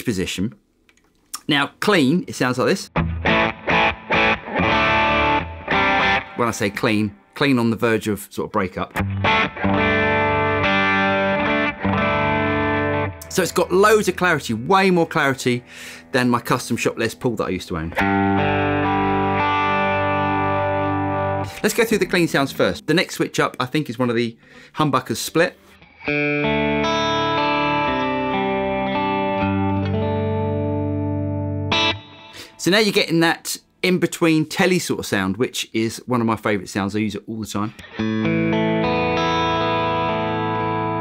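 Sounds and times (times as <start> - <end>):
electric guitar strummed chord: 9.0 - 13.3, 25.8 - 32.5, 37.8 - 41.0.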